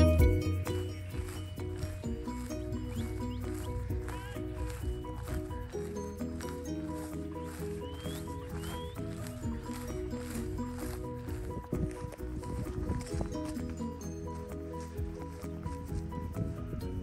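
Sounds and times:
music with steady beat: 0.0s - 17.0s.

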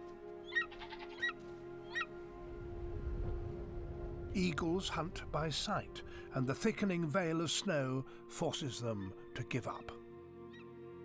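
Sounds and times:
eagle yelping calls: 0.4s - 2.1s.

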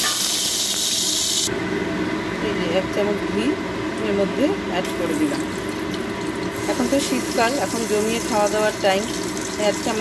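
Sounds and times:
spices sizzling in hot oil: 0.0s - 1.5s, 4.9s - 10.0s.

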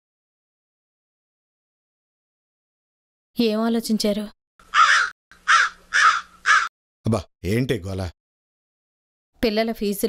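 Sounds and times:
crow cawing: 4.6s - 6.7s.

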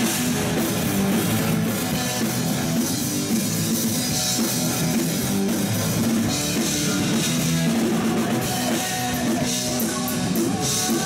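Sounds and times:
distorted electric guitars: 0.0s - 11.0s
pounding drum kit: 0.0s - 11.0s.

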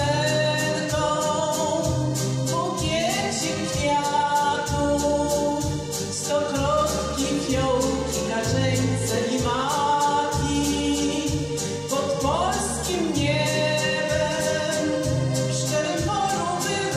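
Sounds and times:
song over backing track: 0.0s - 16.9s.

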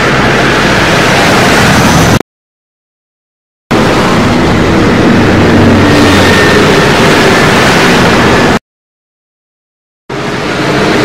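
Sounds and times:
low hum: 3.7s - 8.6s
spaceship engine rumble: 3.7s - 8.6s.

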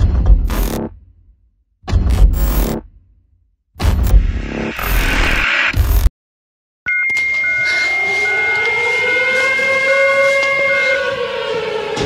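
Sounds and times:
short beeps: 6.9s - 8.7s
steady high tone: 6.9s - 10.0s
air-raid siren wailing: 7.2s - 12.0s.

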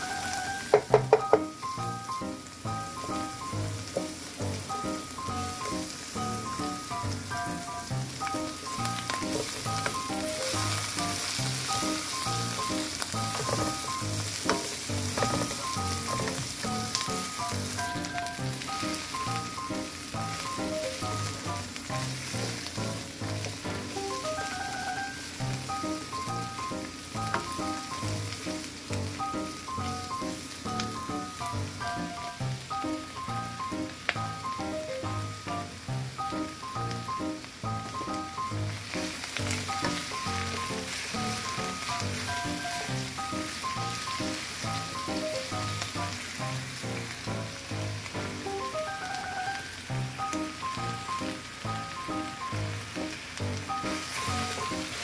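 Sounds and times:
background music: 0.0s - 55.0s
vegetables sizzling in a skillet: 0.0s - 55.0s
spatula stirring in a skillet: 7.8s - 19.5s, 20.1s - 24.5s.

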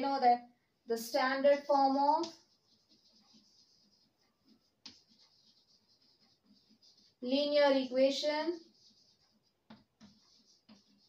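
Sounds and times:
chalk writing on a blackboard: 1.8s - 11.0s.

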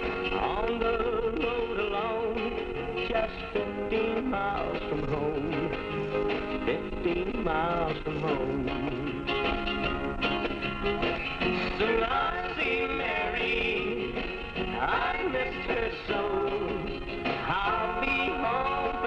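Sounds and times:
small country band playing: 0.0s - 19.0s.

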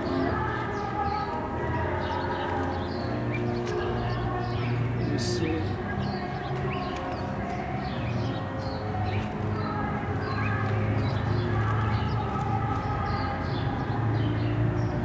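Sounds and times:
low street hum: 0.0s - 15.0s
small birds chirping: 0.0s - 15.0s.

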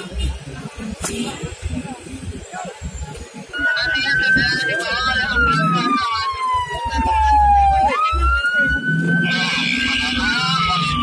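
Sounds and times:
ambulance siren wailing: 3.5s - 11.0s.

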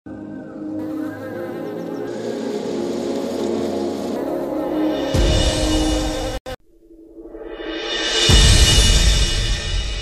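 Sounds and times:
bees buzzing: 0.6s - 5.9s.

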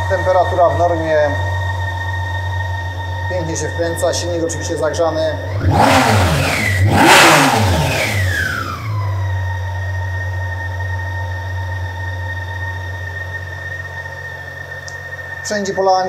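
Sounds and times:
motorcycle engine revving and idling: 0.0s - 16.0s.

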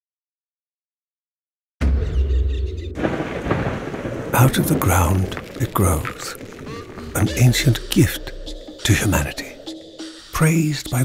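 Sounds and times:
thunder rumble: 1.8s - 10.4s
rain hiss: 3.0s - 11.0s.

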